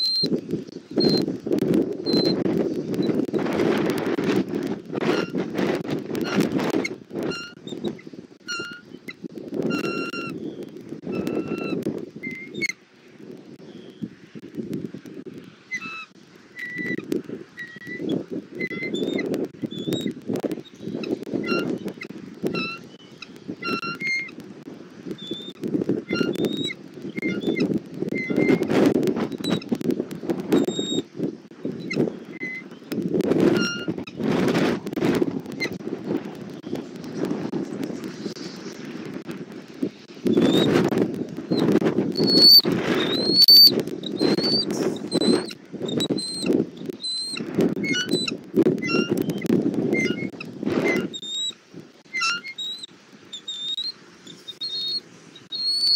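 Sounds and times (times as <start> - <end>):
wind gusting on microphone: 0.0 - 55.9
high bird chirps: 42.2 - 45.5, 52.2 - 55.9.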